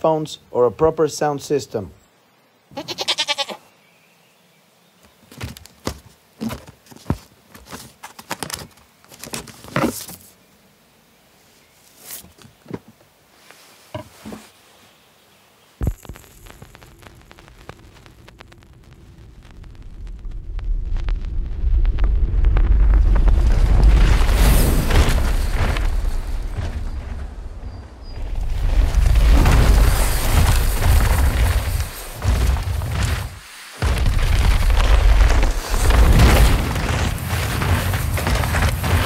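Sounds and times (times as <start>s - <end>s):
stylus dropping onto record: 15.8s - 18.5s
vinyl surface crackle and pops: 15.8s - 27.3s, 28.3s - 39.0s
deep rumble: 15.8s - 39.0s.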